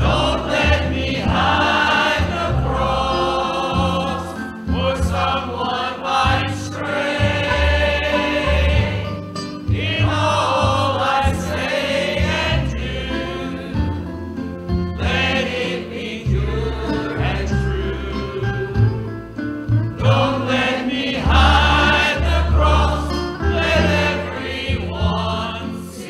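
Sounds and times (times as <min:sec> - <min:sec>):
church choir singing: 0:00.0 - 0:19.1, 0:20.0 - 0:26.0
low instrumental accompaniment: 0:00.0 - 0:26.0.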